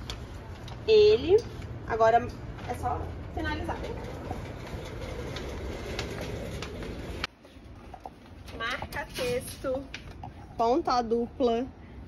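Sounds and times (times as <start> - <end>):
footsteps on shop floor: 2.5 - 7.6.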